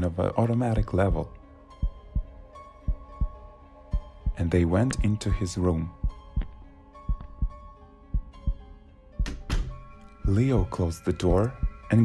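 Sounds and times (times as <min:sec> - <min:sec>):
background music tones: 0:00.0 - 0:12.0
heartbeat thumps: 0:01.8 - 0:05.2, 0:06.0 - 0:09.5, 0:11.6 - 0:11.9.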